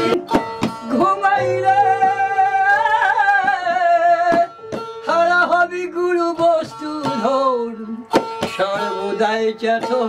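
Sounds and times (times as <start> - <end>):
plucked one-string lute: 0.0 - 10.0.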